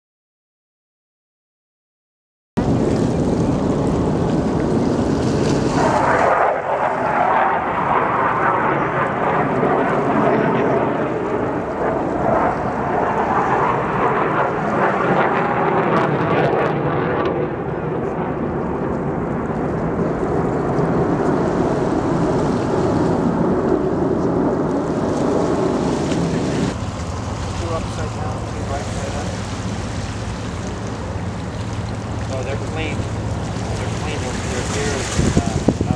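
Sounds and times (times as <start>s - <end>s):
jet fighters flying past: 2.6s - 35.9s.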